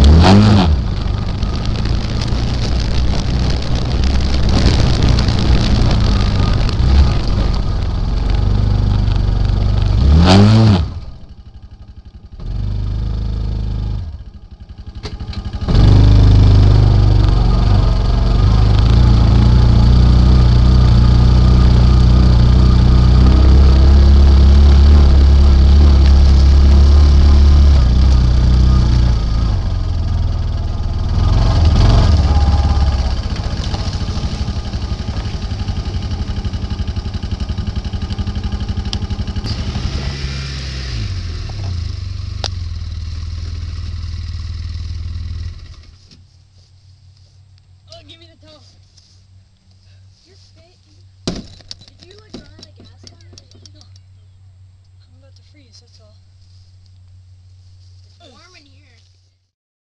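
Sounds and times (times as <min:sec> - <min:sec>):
wind noise: 0:00.0 - 0:10.5
utility vehicle engine revving: 0:00.0 - 0:46.0.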